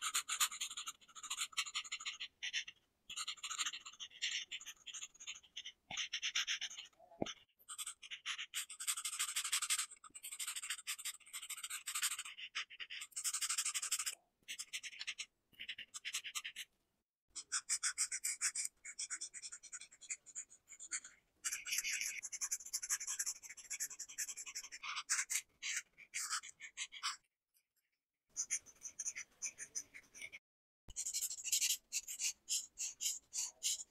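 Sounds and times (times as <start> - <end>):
marker scratching on paper: 0.0 - 16.7, 17.4 - 27.3, 28.4 - 33.9.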